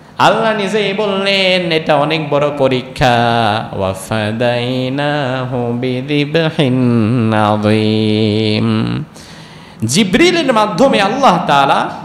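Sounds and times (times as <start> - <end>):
man chanting a recitation: 0.2 - 9.1.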